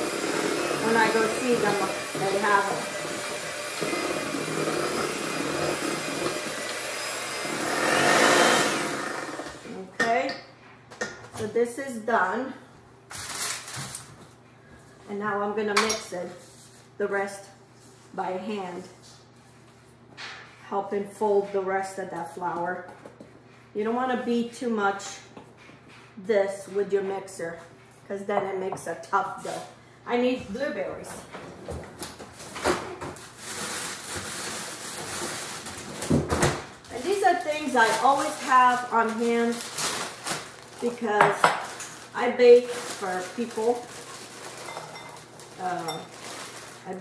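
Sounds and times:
bag rustling and sliding: 41.8 - 47.0.

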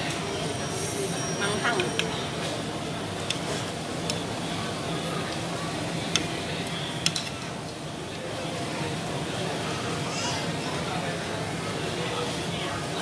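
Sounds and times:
background chatter: 0.0 - 13.0.

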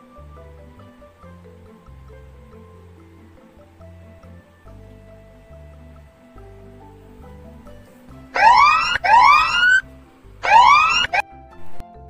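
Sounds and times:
soft background music: 0.0 - 12.0
siren-like timer alarm whoops: 8.4 - 9.8, 10.4 - 11.2.

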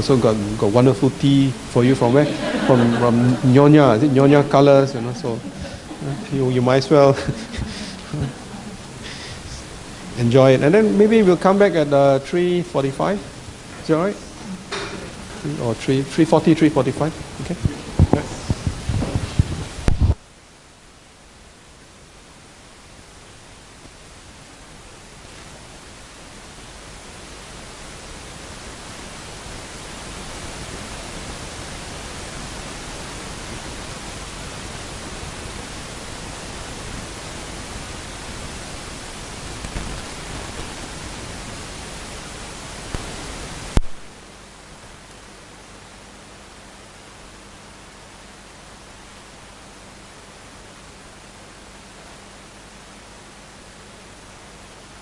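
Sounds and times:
faint low hum: 0.0 - 55.0
steady hiss: 0.0 - 55.0.

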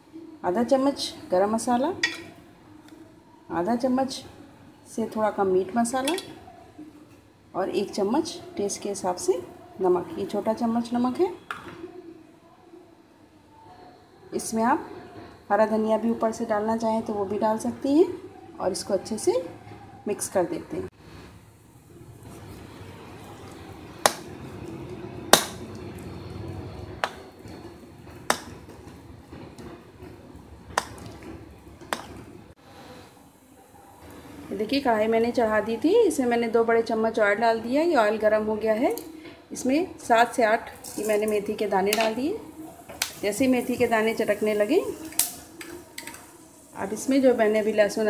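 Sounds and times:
spoon clinking bowl: 2.0 - 2.4, 6.0 - 6.4
seeds crackling in hot oil: 21.6 - 32.4, 40.4 - 48.0
spoon stirring thick batter: 22.2 - 32.4
faint oil hiss: 42.2 - 48.0.

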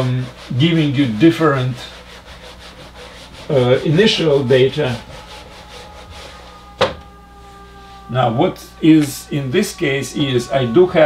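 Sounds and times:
eraser rubbing on whiteboard: 0.0 - 6.6.

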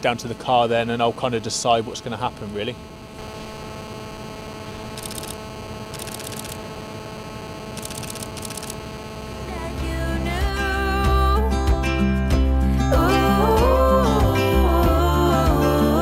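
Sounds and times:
steady low hum: 0.0 - 11.5
camera shutter bursts: 4.8 - 6.7, 7.7 - 8.9
music: 9.5 - 16.0.

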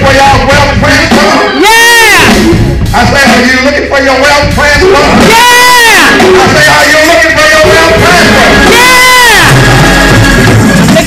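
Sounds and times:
worship music instruments: 0.0 - 11.0.

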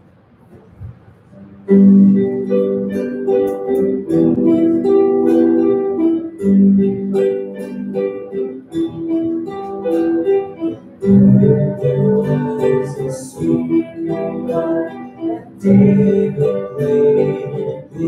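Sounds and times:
plucked guitar chords: 1.3 - 18.0.

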